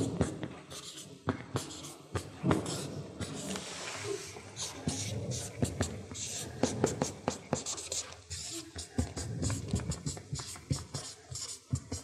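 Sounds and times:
marker scratching on paper: 0.0 - 12.0.

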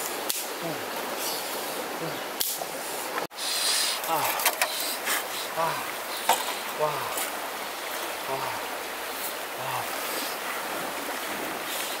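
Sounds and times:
stream water running: 0.0 - 12.0.

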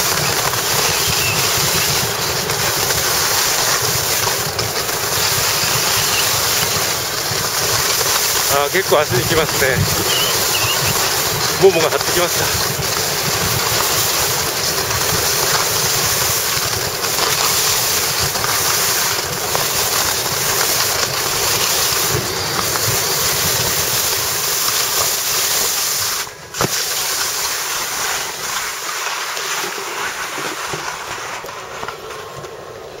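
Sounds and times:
skis hissing over snow: 0.0 - 33.0
wind rushing over microphone: 8.6 - 15.3.

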